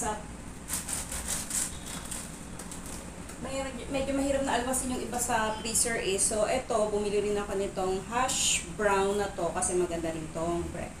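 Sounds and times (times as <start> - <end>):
plastic packaging rustling: 0.6 - 3.4.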